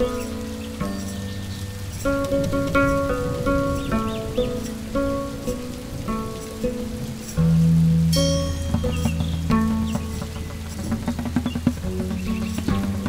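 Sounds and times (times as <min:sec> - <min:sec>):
deeper sustained tone: 0:00.0 - 0:11.2
plucked string melody: 0:00.0 - 0:13.0
steady low drone: 0:00.0 - 0:13.0.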